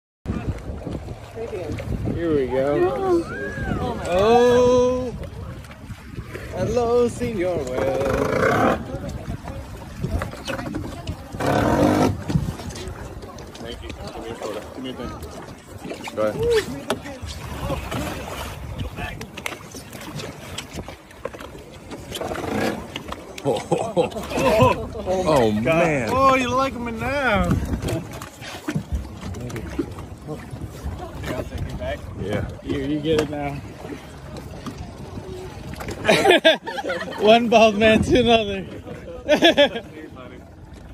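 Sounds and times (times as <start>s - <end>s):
wind: 0.2s - 40.9s
sea water washing: 0.3s - 40.9s.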